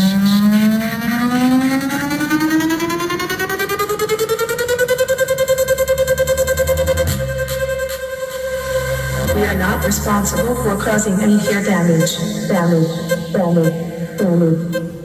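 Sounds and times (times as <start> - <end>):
electronic dance music: 0.0 - 15.0
rising buzzy synth tone: 0.0 - 15.0
deep bass: 5.0 - 15.0.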